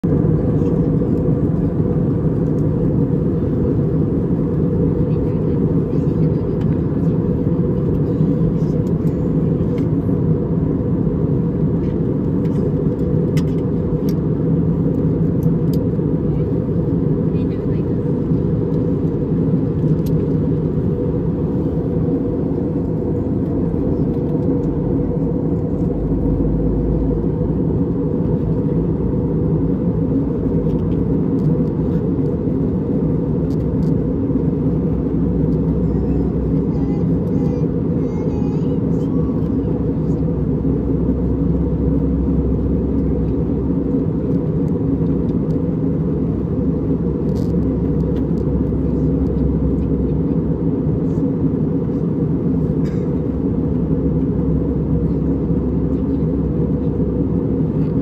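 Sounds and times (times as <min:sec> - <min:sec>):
jet engine and airflow rumble: 0:00.0 - 0:58.0.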